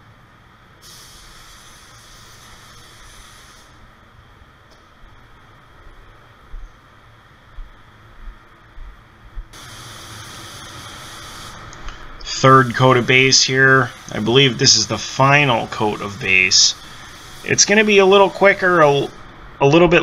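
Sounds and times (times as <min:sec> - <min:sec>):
paint spray gun hissing: 0:00.8 - 0:03.8, 0:09.5 - 0:19.2.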